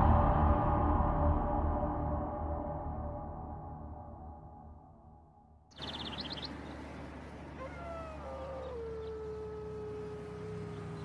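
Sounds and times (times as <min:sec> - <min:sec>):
high bird chirps: 0:05.7 - 0:06.9
long animal wail: 0:07.5 - 0:11.0.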